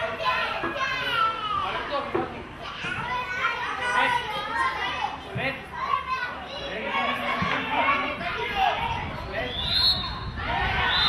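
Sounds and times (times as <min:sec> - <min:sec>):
children shouting: 0:00.0 - 0:02.0, 0:02.6 - 0:09.1, 0:09.9 - 0:11.0.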